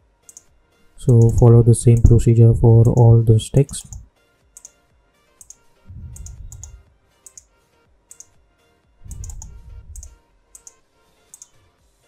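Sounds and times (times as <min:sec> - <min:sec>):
faint background music: 0:00.0 - 0:12.0
computer mouse clicks: 0:00.3 - 0:00.5, 0:01.1 - 0:02.2, 0:02.8 - 0:04.0, 0:04.6 - 0:04.8, 0:05.4 - 0:07.5, 0:08.1 - 0:08.4, 0:09.1 - 0:11.6
low rumbles: 0:05.9 - 0:06.9, 0:09.0 - 0:10.2.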